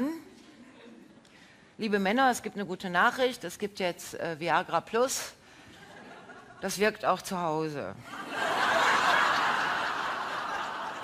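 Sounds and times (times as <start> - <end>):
audience laughing: 8.1 - 11.0.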